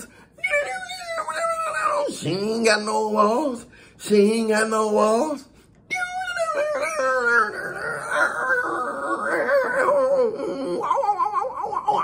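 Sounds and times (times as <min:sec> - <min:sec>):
man's high-pitched vocal wail: 0:00.0 - 0:03.6, 0:04.6 - 0:12.0.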